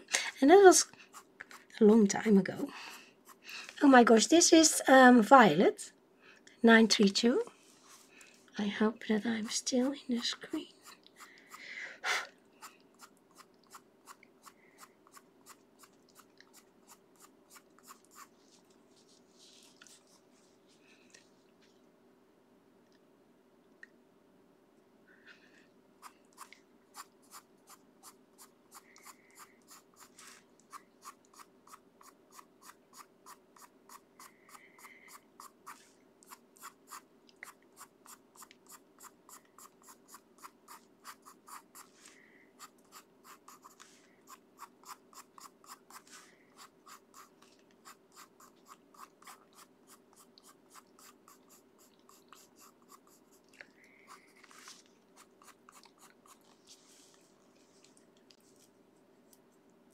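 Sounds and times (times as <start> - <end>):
faint steady hum: 0.0 - 59.9
pencil scratching on paper: 1.0 - 4.8, 12.6 - 20.2, 26.0 - 56.9.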